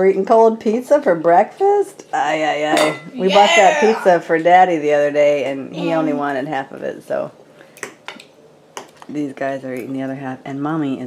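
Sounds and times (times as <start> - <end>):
cutlery tapping on plates: 2.8 - 3.2.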